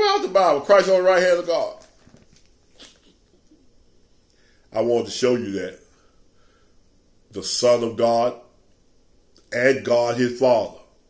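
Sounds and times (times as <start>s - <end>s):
faint breath through nose: 5.9s - 6.9s.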